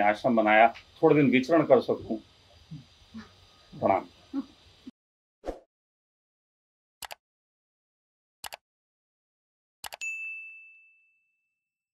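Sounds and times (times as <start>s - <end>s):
bright bell ding: 10.0s - 11.6s.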